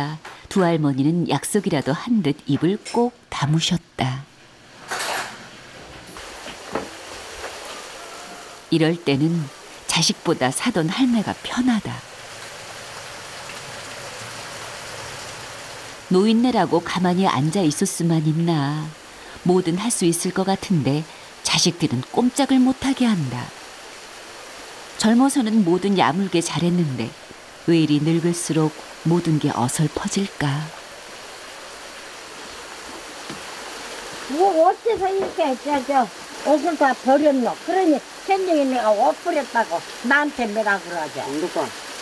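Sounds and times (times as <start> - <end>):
hiss of wet weather and water: 0.0 - 42.0
mountain stream rushing: 6.2 - 42.0.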